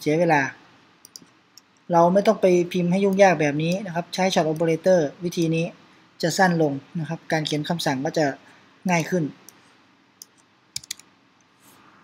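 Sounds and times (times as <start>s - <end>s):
keyboard key clicks: 10.2s - 11.0s.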